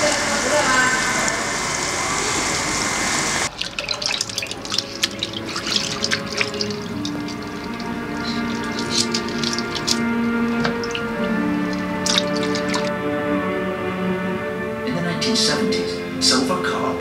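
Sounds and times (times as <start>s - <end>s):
water splashing in basin: 3.4s - 13.1s
bubbling water in tank: 3.5s - 13.0s
soft music: 3.5s - 17.0s.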